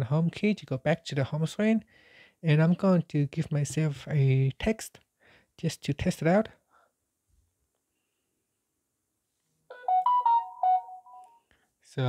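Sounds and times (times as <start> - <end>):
phone notification tone: 9.7 - 11.4.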